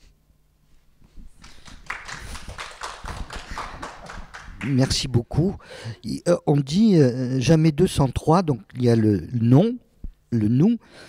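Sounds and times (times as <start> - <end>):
people clapping: 1.3 - 5.2.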